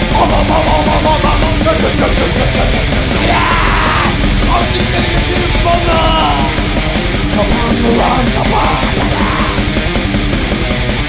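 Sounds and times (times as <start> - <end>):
person yelling vocals: 0.0 - 2.2, 3.1 - 6.6, 7.4 - 9.8
loud rough rock song: 0.0 - 11.0.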